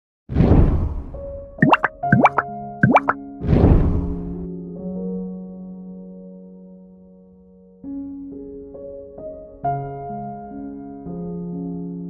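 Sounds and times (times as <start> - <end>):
rising plop sound effects: 1.6 - 3.2.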